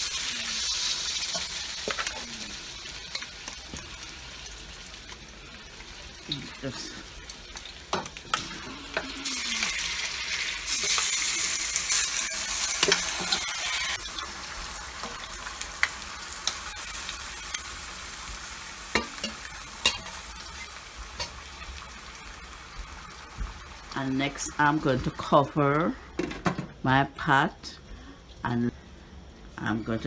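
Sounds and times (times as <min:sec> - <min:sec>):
meat sizzling in a frying pan: 0:00.0 - 0:25.9.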